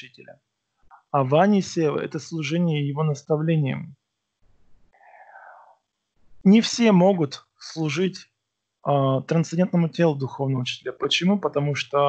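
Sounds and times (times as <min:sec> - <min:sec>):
faint breathy vocal sound: 0:05.0 - 0:05.7.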